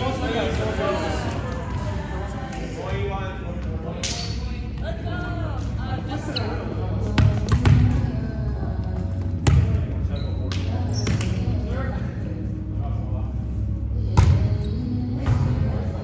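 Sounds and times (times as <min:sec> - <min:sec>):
players' voices: 0:00.0 - 0:16.0.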